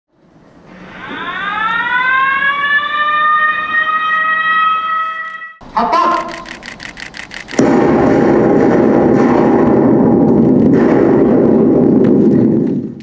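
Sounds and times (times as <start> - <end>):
warning siren winding up: 0.7 - 7.6.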